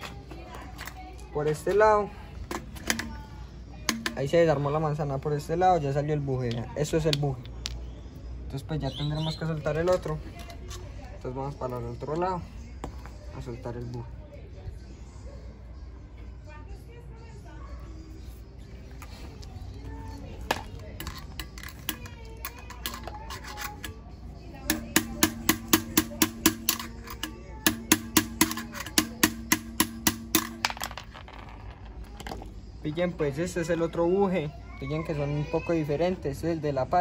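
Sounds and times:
handling sounds: 0:18.8 - 0:32.6.

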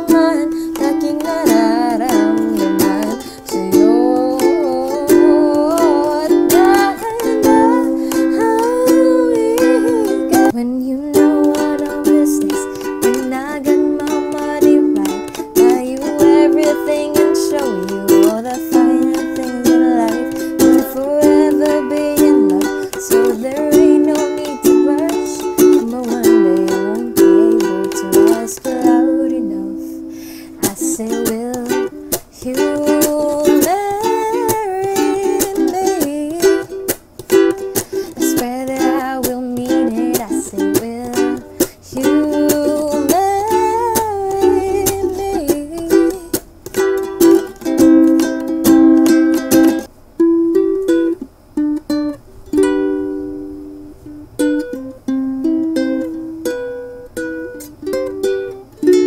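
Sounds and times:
woman singing: 0:00.0 - 0:49.9
ukulele strumming: 0:00.0 - 0:59.0.

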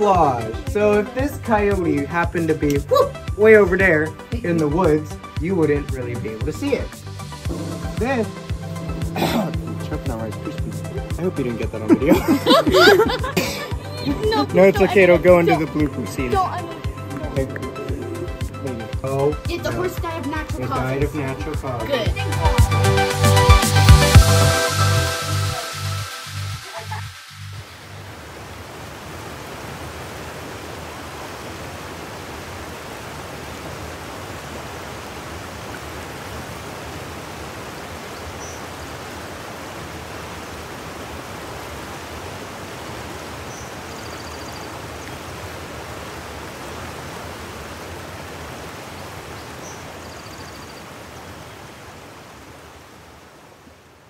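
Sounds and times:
creek water rushing: 0:00.0 - 0:54.0.

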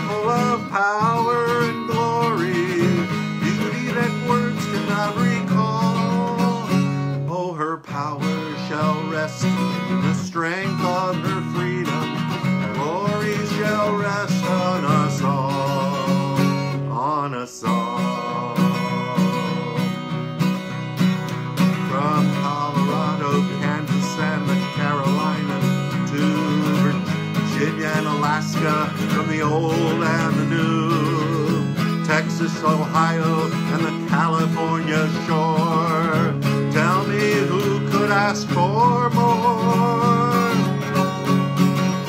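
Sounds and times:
acoustic guitar strumming: 0:00.0 - 0:42.0
man singing: 0:00.0 - 0:42.0.

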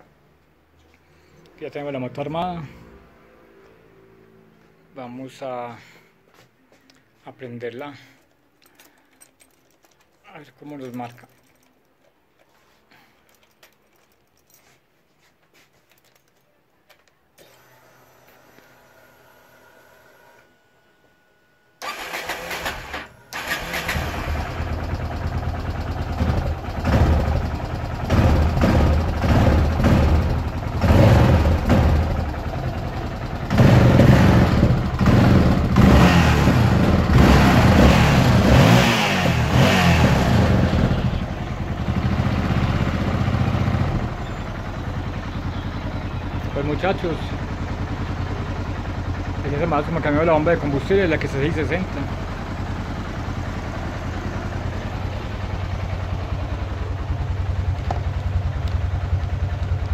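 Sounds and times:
motorcycle engine revving: 0:21.8 - 0:59.9.

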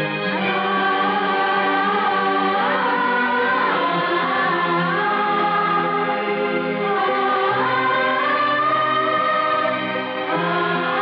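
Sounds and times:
choir singing held notes: 0:00.0 - 0:11.0.

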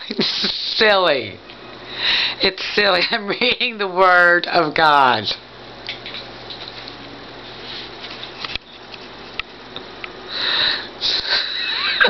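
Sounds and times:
woman's wheezing laughter: 0:11.0 - 0:12.0.

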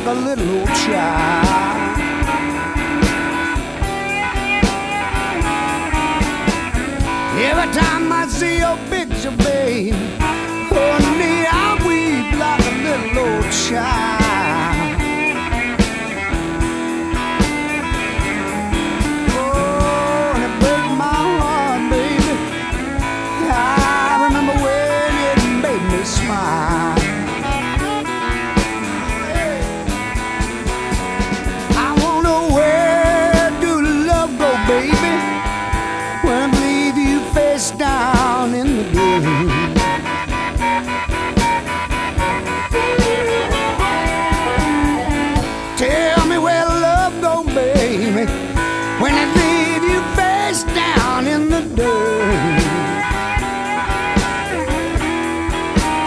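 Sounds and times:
bass: 0:00.0 - 0:56.0
electric guitar lead lines: 0:00.0 - 0:56.0
steady drum beat: 0:00.0 - 0:56.0.

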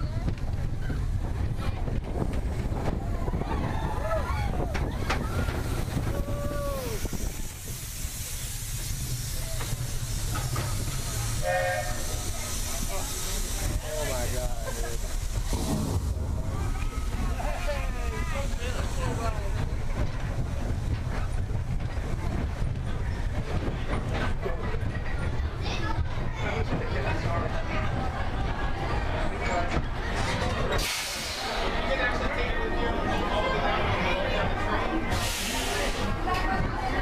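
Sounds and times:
roller coaster rumbling on track: 0:00.0 - 0:37.0
hiss: 0:05.2 - 0:20.3, 0:30.8 - 0:31.7, 0:35.1 - 0:36.2.

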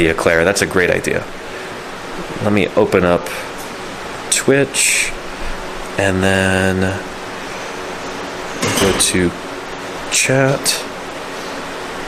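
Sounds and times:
indoor room noise hiss: 0:00.0 - 0:12.0.

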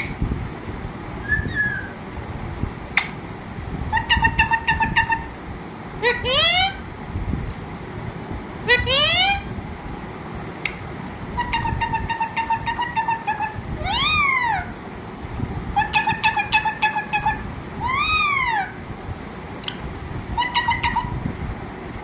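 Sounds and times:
parakeet squawking and chattering: 0:01.2 - 0:02.0, 0:03.9 - 0:05.3, 0:06.0 - 0:06.8, 0:08.7 - 0:09.5, 0:11.3 - 0:14.7, 0:15.8 - 0:18.8, 0:20.3 - 0:21.2.

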